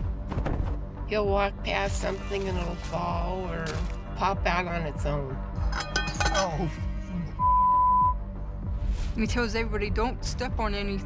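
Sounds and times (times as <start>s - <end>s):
background music: 0.0s - 11.0s
censor bleep tone: 7.4s - 8.2s.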